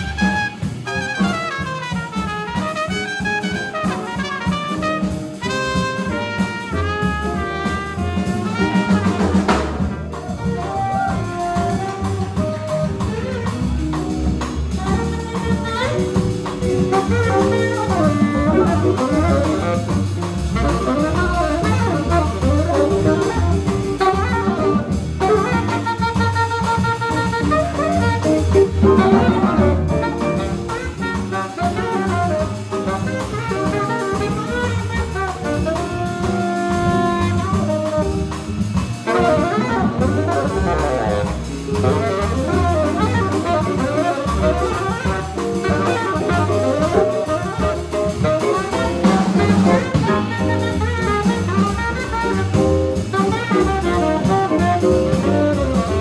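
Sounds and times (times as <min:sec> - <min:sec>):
drum kit with cymbals: 0:00.0 - 0:56.0
piano: 0:00.0 - 0:56.0
saxophone melody: 0:00.0 - 0:56.0
upright bass walking: 0:00.0 - 0:56.0
electric guitar: 0:22.7 - 0:26.0, 0:27.1 - 0:33.0, 0:36.9 - 0:51.3.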